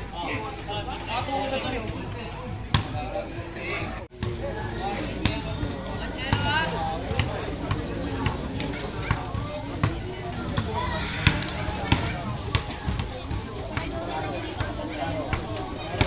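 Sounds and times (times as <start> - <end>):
crowd chatter: 0.0 - 16.0
basketball bouncing on concrete: 7.1 - 14.0.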